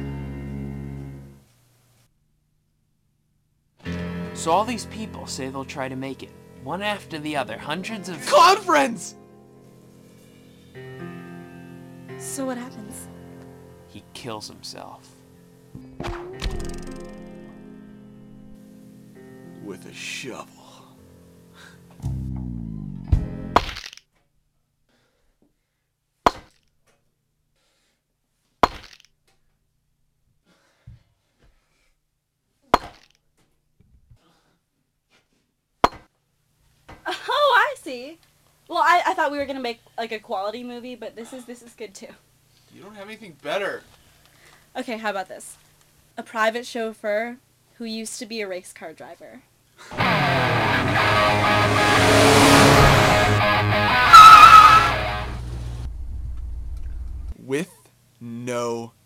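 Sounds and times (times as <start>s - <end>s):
guitar music: 3.8s - 20.2s, 21.0s - 23.6s, 49.9s - 55.9s
car tyres squealing: 50.0s - 55.8s.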